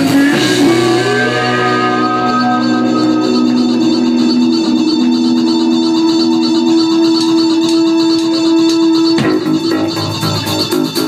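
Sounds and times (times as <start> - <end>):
band holding sustained note: 0.0 - 11.0
lower note: 0.0 - 11.0.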